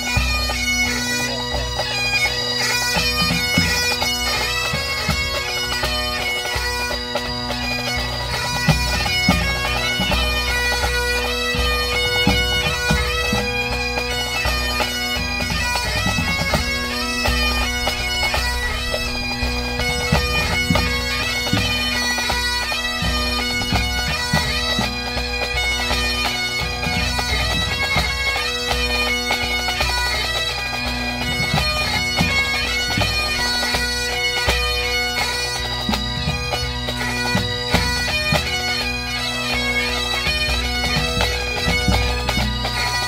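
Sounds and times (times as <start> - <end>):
bagpipes playing: 0.0 - 43.0
drums beating: 14.5 - 28.1.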